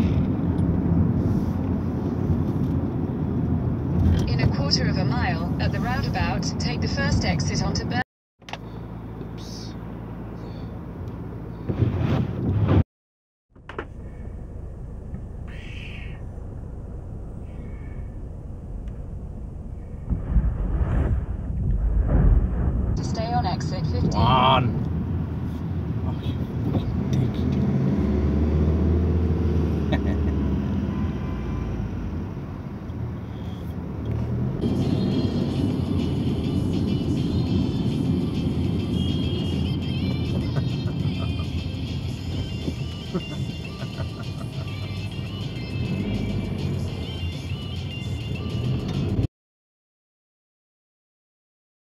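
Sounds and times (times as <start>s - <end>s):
car engine rumble: 0.0s - 12.8s, 13.5s - 49.3s
road noise: 0.0s - 12.9s, 13.5s - 49.3s
radio music: 4.3s - 8.0s, 38.8s - 45.7s
voices on radio: 4.3s - 8.0s, 23.0s - 24.8s.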